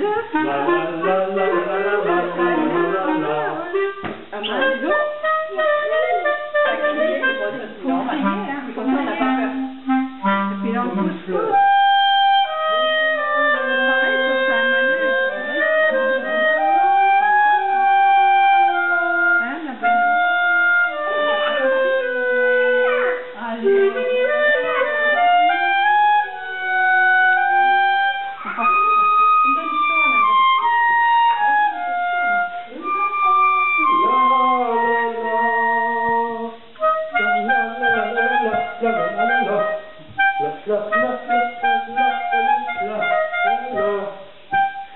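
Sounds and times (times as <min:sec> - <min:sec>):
clarinet melody: 0:00.0 - 0:44.9.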